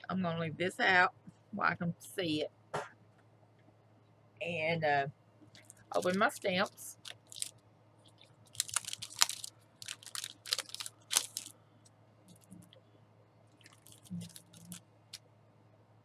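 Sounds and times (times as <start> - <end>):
plastic packaging crinkling: 5.5 - 11.6, 13.5 - 15.2.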